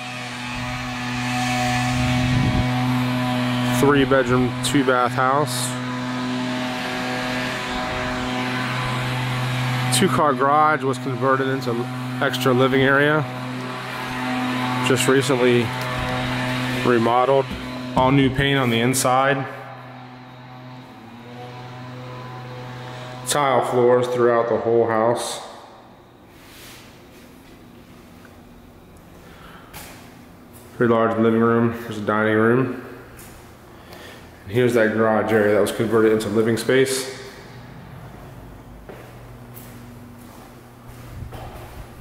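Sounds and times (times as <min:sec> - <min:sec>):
car approaching: 0:00.0 - 0:26.1, 0:32.8 - 0:42.0
steady low hum: 0:00.0 - 0:42.0.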